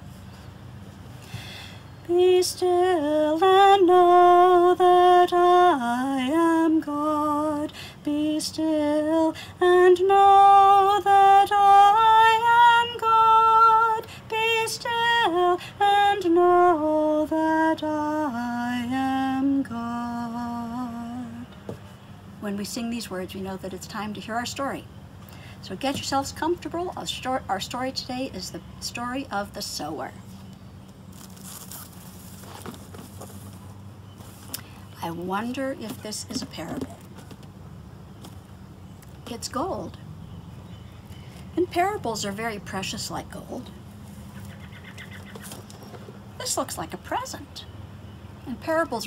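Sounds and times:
low steady hum: 0.0 - 49.0
small birds chirping: 29.6 - 42.2, 43.6 - 49.0
foil rustling: 31.0 - 34.5.

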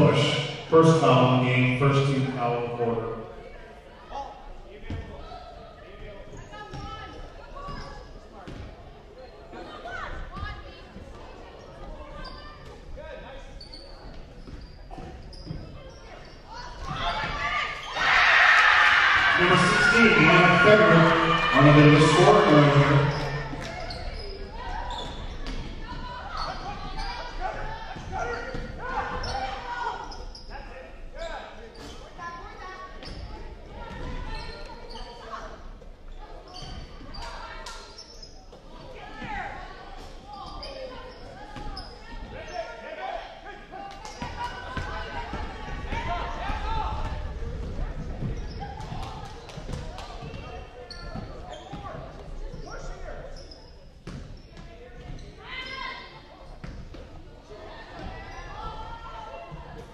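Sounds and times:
indistinct voices: 0.0 - 3.3, 19.2 - 23.7.

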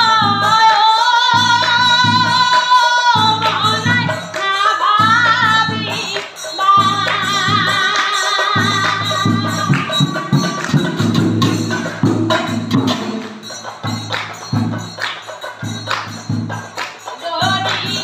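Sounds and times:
woman singing devotional chant: 0.0 - 11.8, 16.8 - 18.0
brass cymbals clashing: 5.0 - 18.0.

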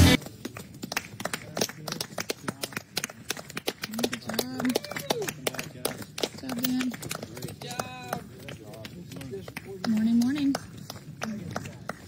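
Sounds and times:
people talking: 3.9 - 10.6
running footsteps on gravel: 4.5 - 12.0.

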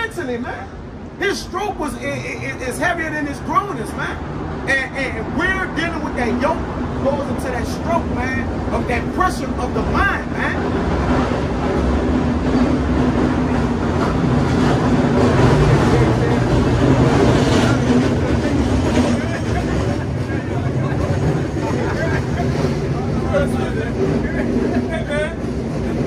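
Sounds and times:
large vehicle engine droning: 3.9 - 26.0
voices talking: 15.2 - 26.0.

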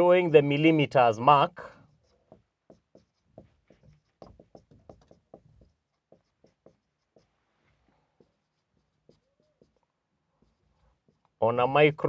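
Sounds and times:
marker pen writing on whiteboard: 1.6 - 11.4.

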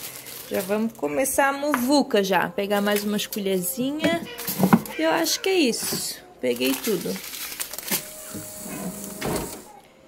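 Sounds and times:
plates and packets handled: 0.0 - 9.8.

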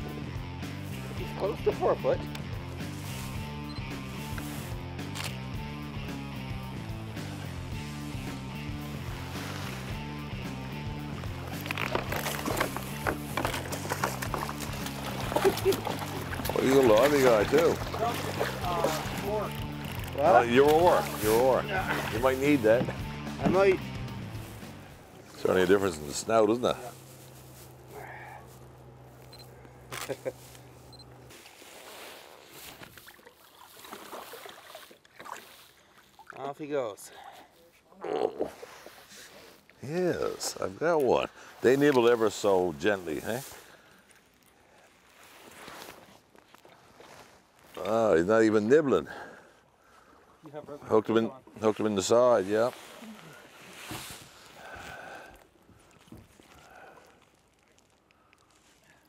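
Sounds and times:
water splashing: 11.2 - 23.8, 30.0 - 37.0.

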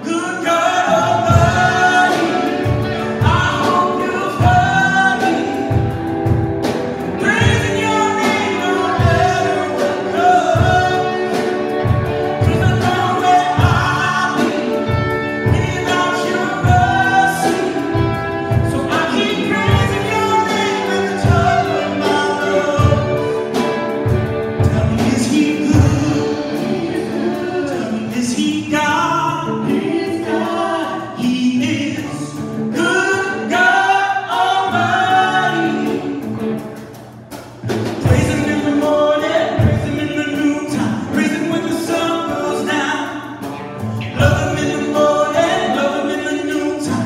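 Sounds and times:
voices singing together: 0.0 - 36.6, 43.9 - 47.0
drum kit: 0.0 - 47.0
guitars: 0.0 - 47.0.

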